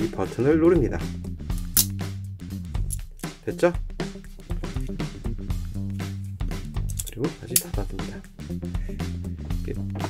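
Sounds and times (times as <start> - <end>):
music with bass and beat: 0.0 - 10.0
locking pliers snapping open: 1.5 - 2.0, 6.8 - 7.8.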